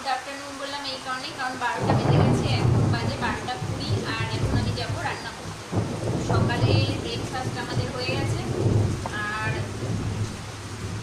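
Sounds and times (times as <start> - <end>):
heavy rain: 0.0 - 11.0
thunder rumble: 1.3 - 11.0.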